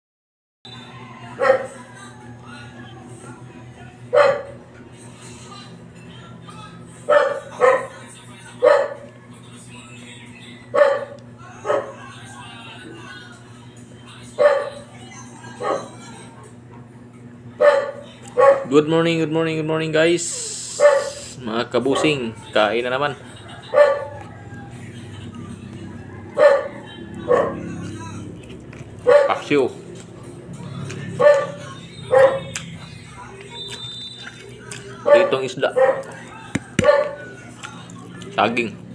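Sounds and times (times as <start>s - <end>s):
steady low hum: 0.7s - 38.9s
dog barking: 1.4s - 1.8s, 4.1s - 4.6s, 7.1s - 8.0s, 8.6s - 9.1s, 10.7s - 12.0s, 14.4s - 14.9s, 15.6s - 16.0s, 17.6s - 18.8s, 20.7s - 21.3s, 21.9s - 22.2s, 23.6s - 24.3s, 26.2s - 27.7s, 29.0s - 29.5s, 31.2s - 32.6s, 35.0s - 36.2s, 36.8s - 37.3s.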